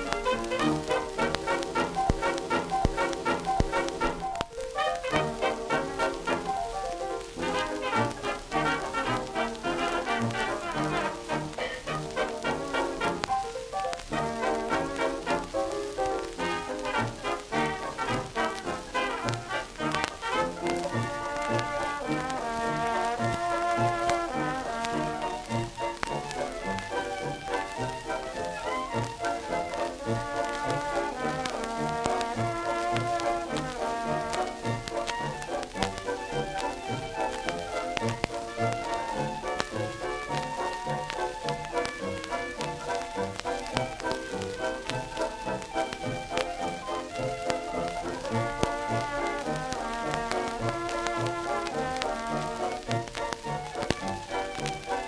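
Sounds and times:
jazz band playing: 0.0 - 55.0
record surface crackle: 0.0 - 55.0.

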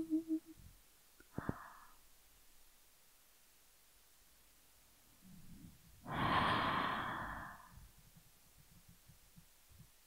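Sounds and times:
person breathing out: 1.3 - 2.0, 6.1 - 7.8.

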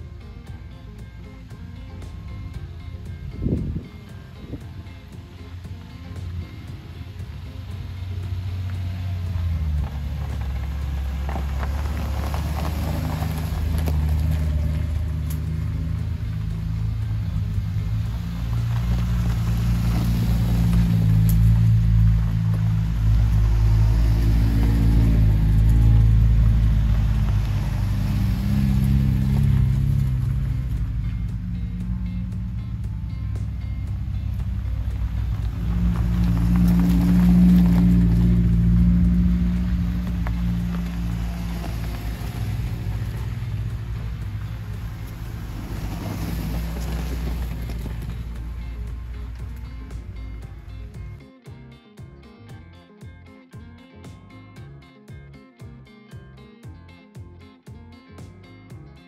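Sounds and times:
off-road vehicle engines rumbling: 0.0 - 59.0.

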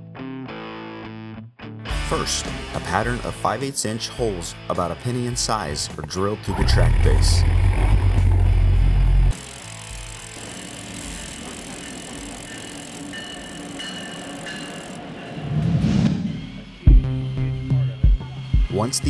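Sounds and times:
rising whoosh: 6.5 - 9.3
hammer drill boring: 6.5 - 15.0
background music: 15.4 - 19.0.

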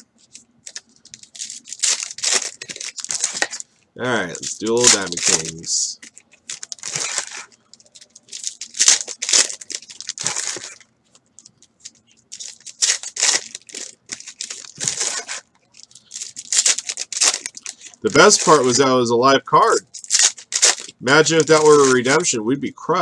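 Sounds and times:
foil wrappers tearing and crinkling: 0.0 - 18.9, 19.8 - 22.3.

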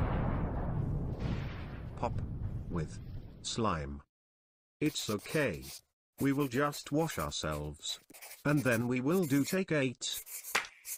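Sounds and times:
loud deep explosion: 0.0 - 3.4.

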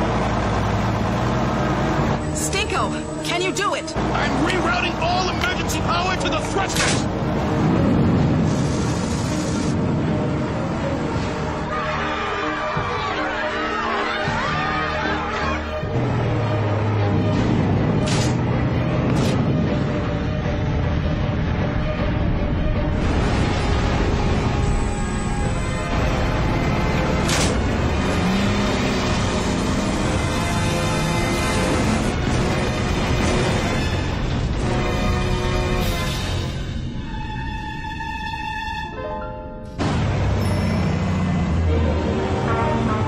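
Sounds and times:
dramatic background music: 0.0 - 43.0.

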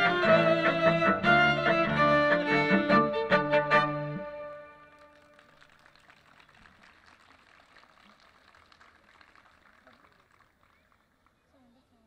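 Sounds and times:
audience applause: 4.8 - 11.4.

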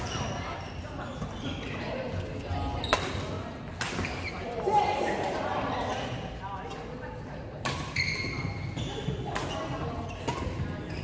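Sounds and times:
background voices in echoing hall: 0.0 - 11.0
rackets striking shuttlecock: 2.8 - 4.3, 7.6 - 10.8.

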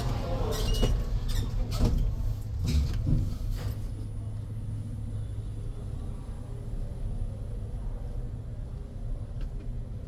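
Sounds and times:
lift car low rumble: 0.0 - 10.0.

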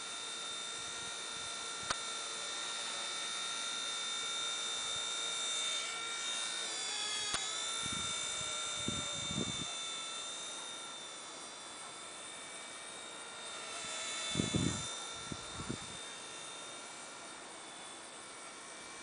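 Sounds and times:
rc helicopter rotor whine: 0.0 - 19.0.

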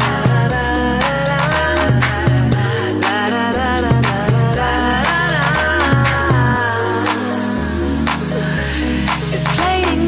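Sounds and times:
song with beat and bass: 0.0 - 10.0.

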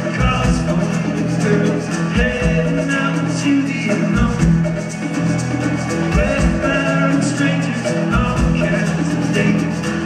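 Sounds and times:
bass guitar: 0.0 - 10.0
drums: 0.0 - 10.0
strummed acoustic guitar: 0.0 - 10.0.

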